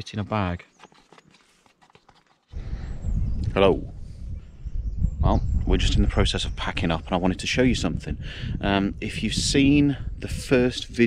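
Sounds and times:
wind rumble on microphone: 2.5s - 11.0s.

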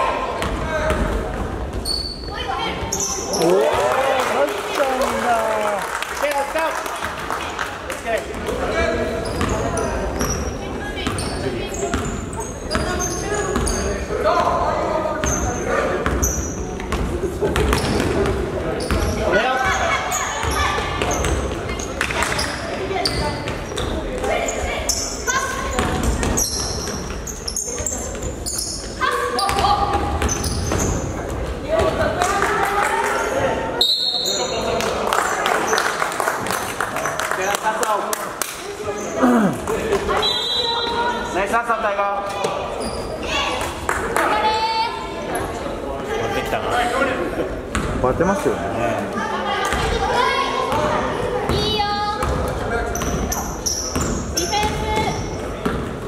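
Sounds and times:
people calling out in a gym: 1.8s - 5.7s, 18.7s - 34.8s, 38.6s - 41.5s, 42.2s - 45.5s, 49.1s - 55.6s.

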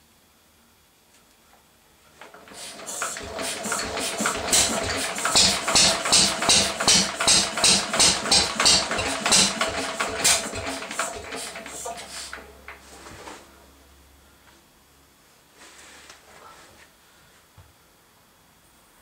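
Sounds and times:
engine backfiring: 2.4s - 12.5s.

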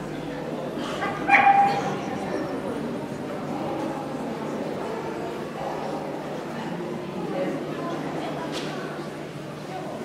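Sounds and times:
dog yelping: 1.3s - 1.9s.

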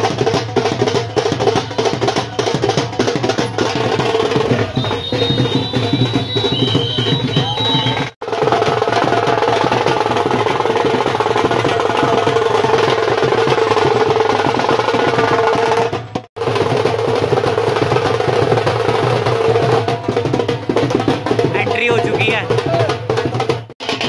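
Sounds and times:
loud music with drumming: 0.0s - 24.0s.

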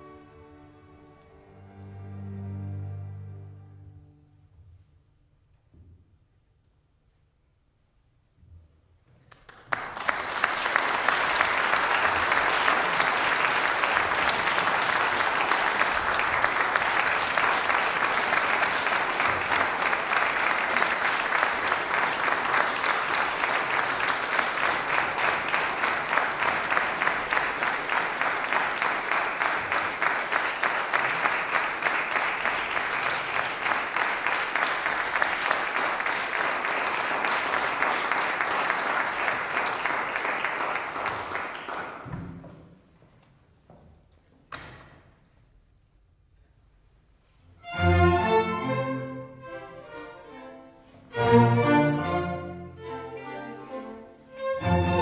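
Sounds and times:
audience applauding: 9.3s - 42.2s.

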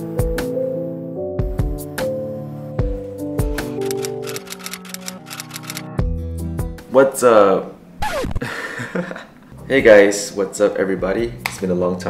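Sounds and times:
background music with held notes: 0.0s - 12.0s
typewriter key clacks: 3.9s - 5.9s.

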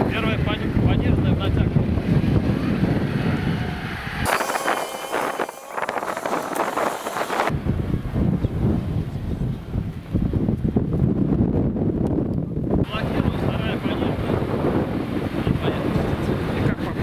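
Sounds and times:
wind noise on microphone: 0.0s - 17.0s
thin high-pitched sound: 4.3s - 7.5s.

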